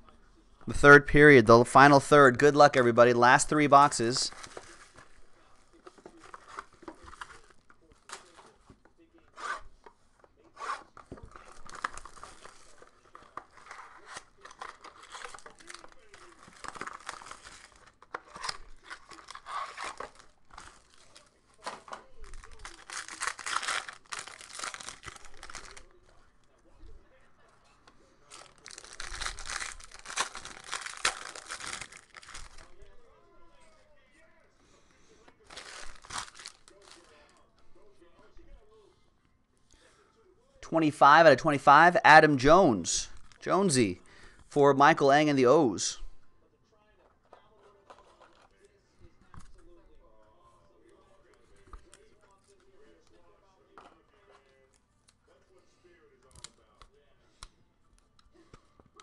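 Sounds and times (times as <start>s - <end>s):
plastic wrapping tearing and crinkling: 4.3s - 5.2s, 10.6s - 26.0s, 28.3s - 32.9s, 35.4s - 37.4s.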